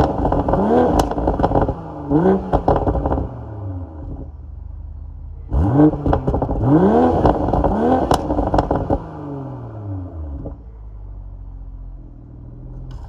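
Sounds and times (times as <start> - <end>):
exhaust pops and crackles: 0.0 - 3.3, 5.9 - 9.1
car engine idling: 0.0 - 13.0
car engine revving: 0.0 - 13.0.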